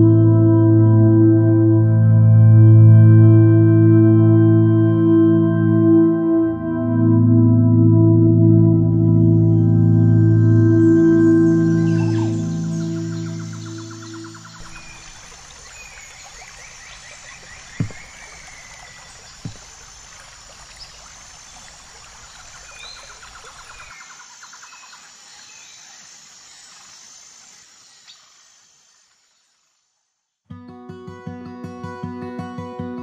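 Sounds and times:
soft ambient music: 0.0s - 15.2s
birds chirping: 10.7s - 26.9s
dull thumps: 17.8s - 18.4s.

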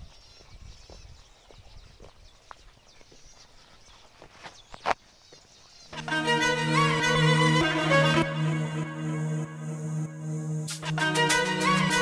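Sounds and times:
footsteps walking: 0.2s - 5.5s.

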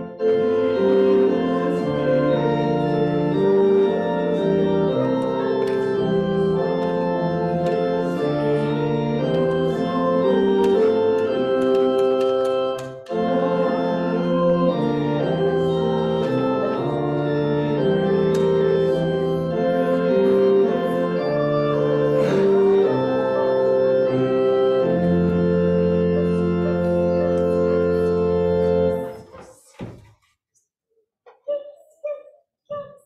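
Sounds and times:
church organ playing chords: 0.0s - 29.2s.

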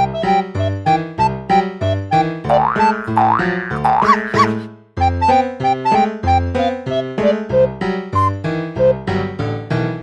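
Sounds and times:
playful background music: 0.0s - 10.0s.

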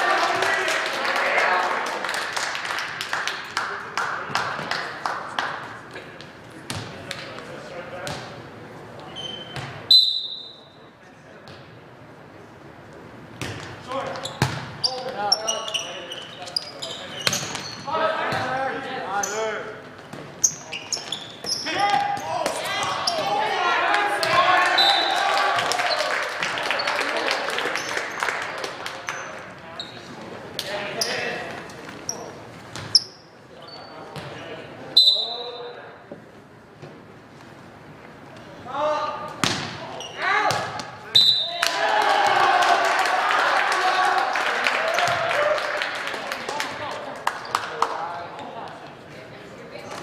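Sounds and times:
sneaker squeaks on hardwood: 9.1s - 9.8s, 14.2s - 17.9s, 20.4s - 22.3s
referee's whistle: 9.2s - 10.8s, 24.7s - 25.2s, 35.0s - 35.7s, 41.1s - 41.6s
volleyball hits: 13.4s - 15.2s, 39.3s - 41.0s.

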